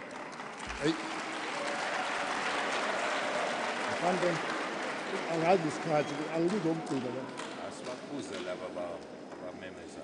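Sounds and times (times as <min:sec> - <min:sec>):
audience applause: 0:00.0 - 0:08.0.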